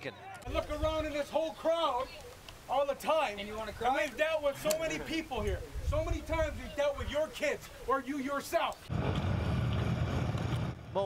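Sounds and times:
wind buffeting microphone: 0:05.2 - 0:07.2.

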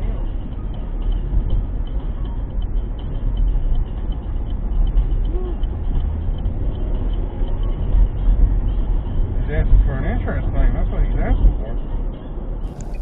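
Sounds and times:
car road and engine rumble: 0:00.0 - 0:13.0.

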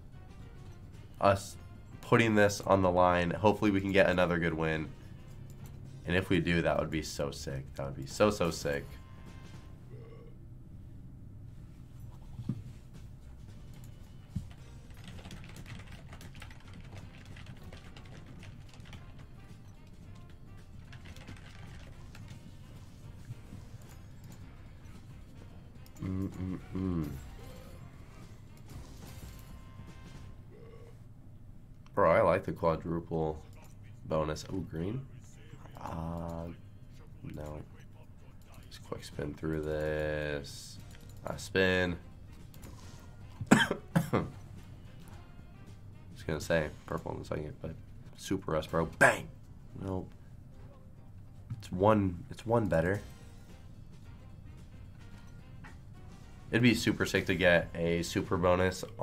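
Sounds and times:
game background music: 0:00.0 - 0:59.0
man coughing: 0:43.4 - 0:44.4, 0:49.0 - 0:49.4.

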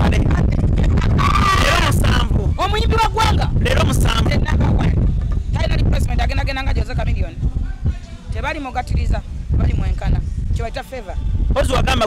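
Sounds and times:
low rumble: 0:00.0 - 0:12.0
woman talking: 0:05.6 - 0:11.2.

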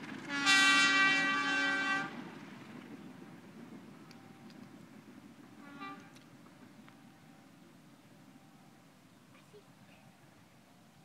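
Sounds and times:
train coaches rumbling past: 0:00.0 - 0:11.0
short train horn toot: 0:00.3 - 0:02.2, 0:05.6 - 0:06.2
faint clicks: 0:04.0 - 0:04.8.

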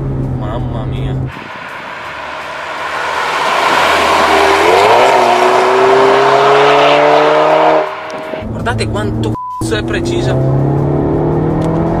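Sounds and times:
car engine accelerating past: 0:01.3 - 0:08.6, 0:10.0 - 0:12.0.

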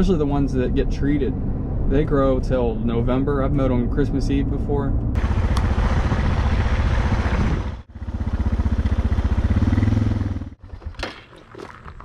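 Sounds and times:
dirt bike engine running: 0:05.2 - 0:11.0.

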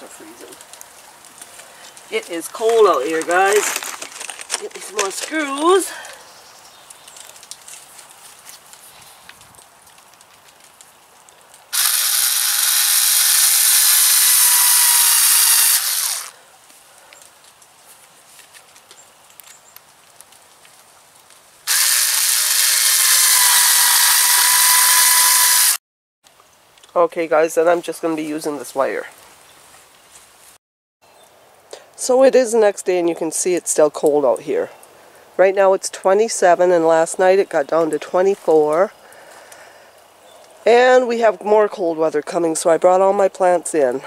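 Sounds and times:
power drill driving screws: 0:11.8 - 0:16.3, 0:21.7 - 0:25.8.

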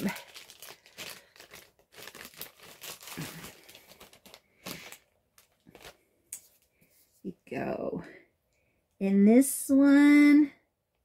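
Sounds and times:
plastic bag crinkling: 0:00.0 - 0:06.0.

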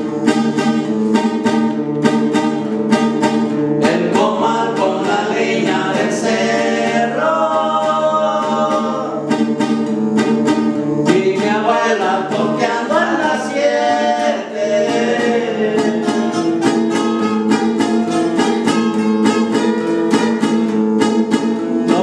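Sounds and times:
acoustic guitars strumming: 0:00.0 - 0:22.0
two men singing in duet: 0:03.8 - 0:09.4, 0:11.0 - 0:16.6.

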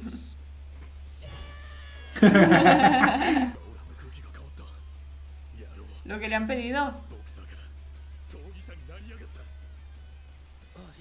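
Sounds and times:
man and woman laughing: 0:02.0 - 0:03.6.

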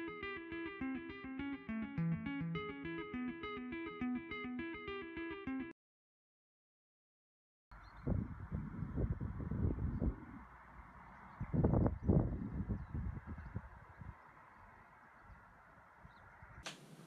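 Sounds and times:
wind buffeting microphone: 0:07.9 - 0:16.6.

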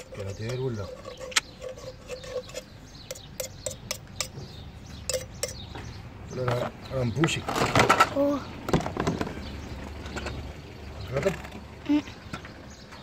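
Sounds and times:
metal tool scraping metal pipe: 0:00.0 - 0:04.4.

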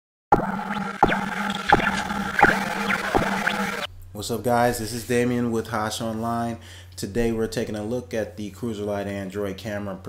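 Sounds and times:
sharp hits with pitch sweep: 0:00.3 - 0:03.9
steady electronic hum: 0:00.3 - 0:03.9.

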